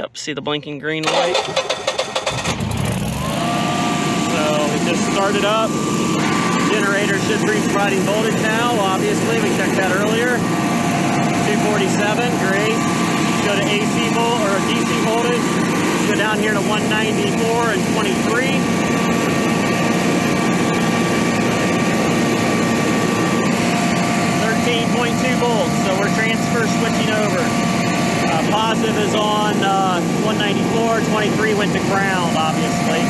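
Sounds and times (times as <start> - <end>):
generator engine cranking and running: 1.0 - 33.0
steady whine: 1.0 - 33.0.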